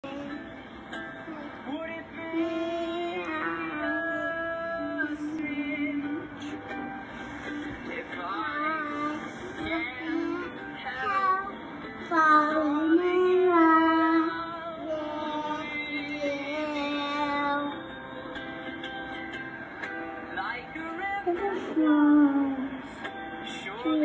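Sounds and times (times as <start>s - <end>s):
girl singing into a microphone: 2.2s - 4.4s, 8.4s - 17.8s.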